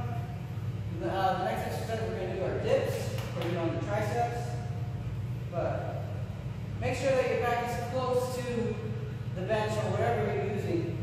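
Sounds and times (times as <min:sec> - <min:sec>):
steady low hum: 0:00.0 - 0:11.0
man talking: 0:00.9 - 0:04.7.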